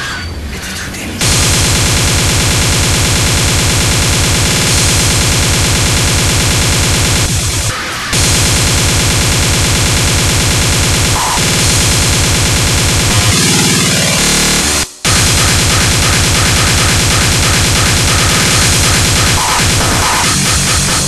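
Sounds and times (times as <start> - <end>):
distorted kick drums pounding: 1.2 - 21.0
fast distorted electronic music: 1.2 - 21.0.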